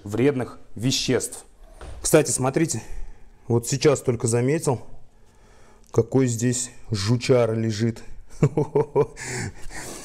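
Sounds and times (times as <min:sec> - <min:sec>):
man chuckling: 0:08.3 - 0:10.0.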